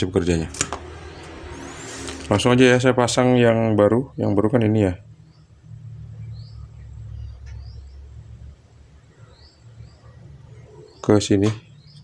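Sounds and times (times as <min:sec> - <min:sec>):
faint bird chirps: 0:03.8 - 0:12.0.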